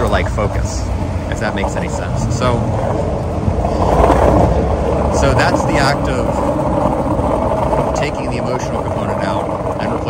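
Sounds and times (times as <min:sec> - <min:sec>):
passing street traffic: 0:00.0 - 0:10.0
skateboard wheels rolling on concrete: 0:00.0 - 0:10.0.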